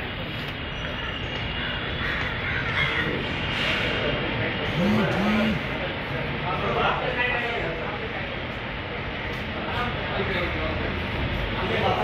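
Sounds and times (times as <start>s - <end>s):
crowd talking: 1.3s - 12.0s.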